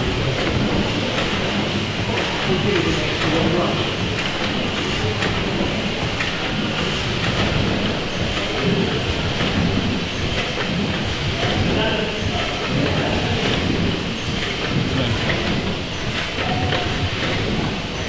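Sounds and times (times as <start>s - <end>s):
steam pumping engine clattering: 0.0s - 18.0s.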